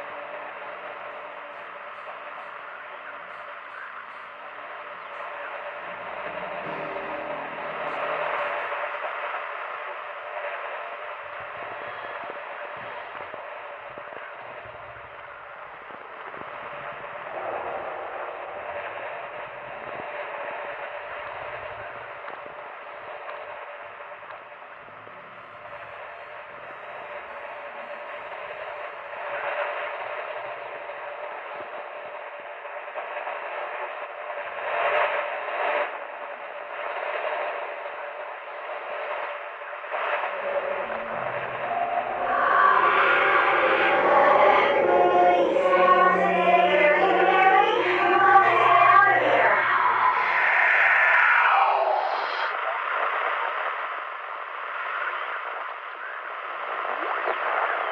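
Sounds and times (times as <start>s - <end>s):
tinny radio hiss: 0.0s - 29.4s, 30.3s - 57.9s.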